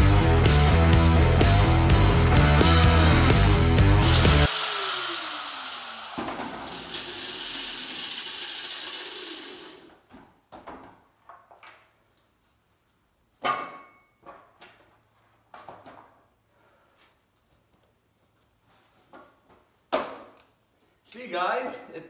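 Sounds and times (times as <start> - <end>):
angle grinder winding down: 0.0 - 9.9.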